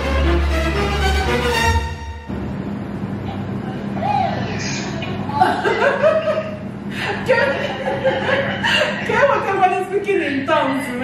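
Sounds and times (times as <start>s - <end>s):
woman laughing: 3.2s - 9.5s.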